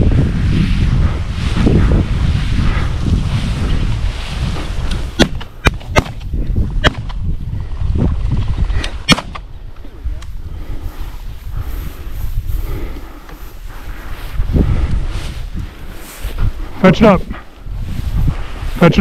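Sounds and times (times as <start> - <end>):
wind rumbling on microphone: 0.0 - 19.0
shotgun shots: 5.2 - 6.2, 9.1 - 9.4.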